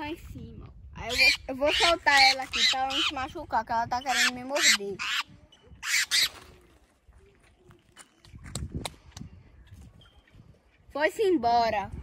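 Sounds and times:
bird harsh rasping squawk: 0:01.1 - 0:03.3, 0:04.0 - 0:06.4.

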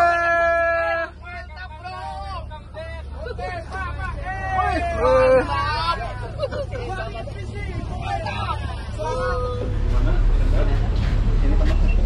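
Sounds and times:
ferry engines idling: 0:00.0 - 0:12.0
voices of people: 0:00.0 - 0:12.0.

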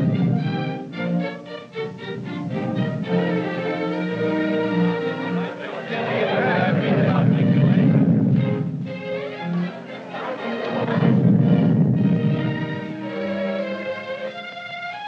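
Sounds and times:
low rumbles: 0:00.0 - 0:14.2
orchestral film score: 0:00.0 - 0:15.0.

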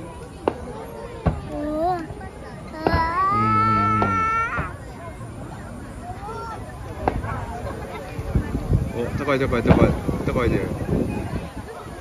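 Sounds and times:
crowd murmuring: 0:00.0 - 0:12.0
lower voice exclaiming: 0:03.1 - 0:04.6.

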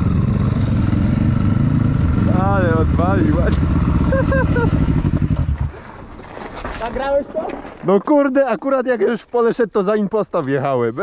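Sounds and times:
dirt bike engine low revs: 0:00.0 - 0:05.8.

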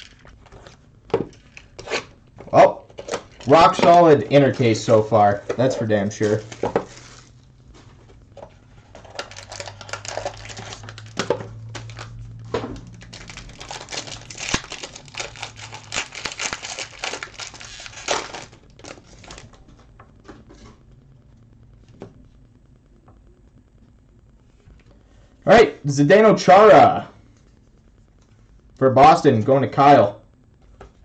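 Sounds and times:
card pack wrapper crinkling: 0:00.0 - 0:02.1, 0:02.9 - 0:19.8.

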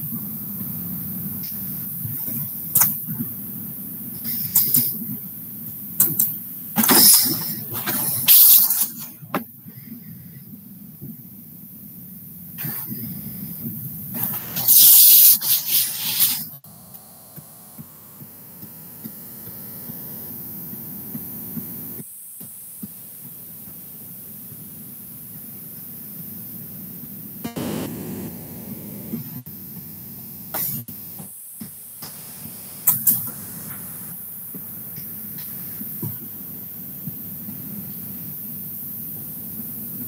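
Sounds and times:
short loud noises: 0:27.5 - 0:29.4.

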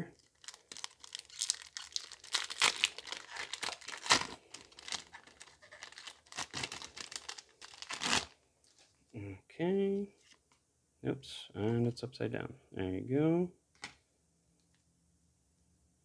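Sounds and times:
foil wrapper tearing and crinkling: 0:00.2 - 0:08.3.

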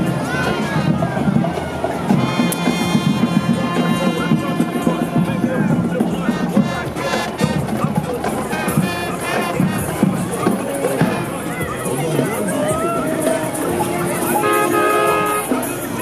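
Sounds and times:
crowd voices: 0:00.0 - 0:16.0
marching band brass playing: 0:00.0 - 0:16.0.

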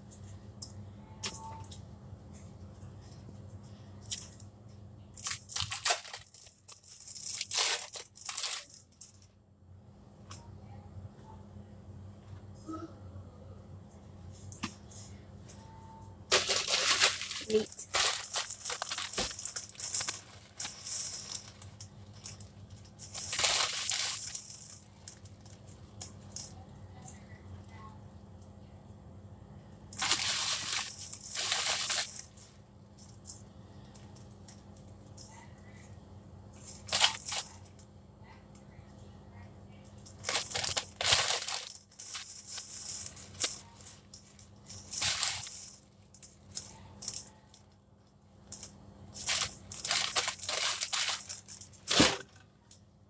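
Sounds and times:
steady low hum: 0:00.0 - 0:53.0
plastic packaging crinkling: 0:05.2 - 0:08.7, 0:16.3 - 0:22.4, 0:23.0 - 0:25.6, 0:30.0 - 0:32.5, 0:40.2 - 0:45.9, 0:49.2 - 0:52.4.

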